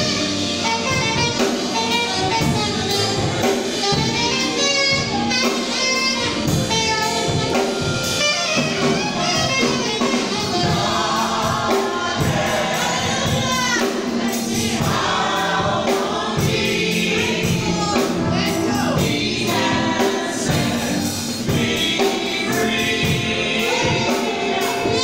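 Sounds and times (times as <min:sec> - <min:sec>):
gospel choir singing: 0:00.0 - 0:25.0
live band accompaniment: 0:00.0 - 0:25.0
steady drum beat: 0:00.0 - 0:25.0.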